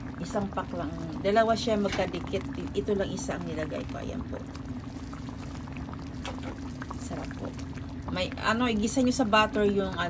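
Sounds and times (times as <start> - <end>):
steady low hum: 0.0 - 10.0
stew bubbling in a frying pan: 0.0 - 10.0.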